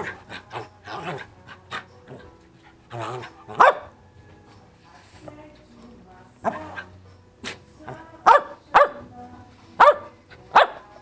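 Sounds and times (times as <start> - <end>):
dog barking: 3.0 - 4.0, 8.2 - 9.0, 9.8 - 10.9.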